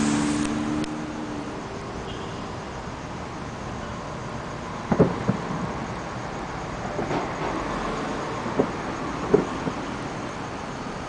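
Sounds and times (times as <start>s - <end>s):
traffic noise: 0.0s - 11.0s
distant fireworks thuds: 4.8s - 6.0s, 6.8s - 10.2s.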